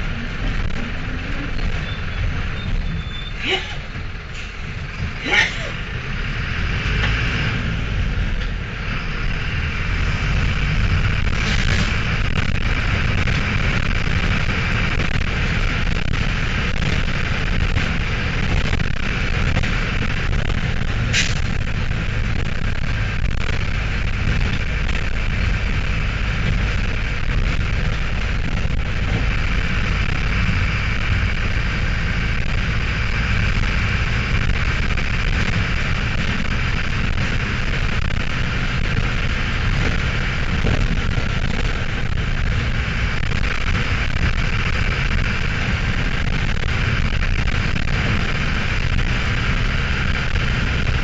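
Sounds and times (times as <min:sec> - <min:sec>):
knocks and rattles from road bumps: 0:00.0 - 0:03.1, 0:06.7 - 0:51.0
diesel engine low rumble: 0:00.0 - 0:51.0.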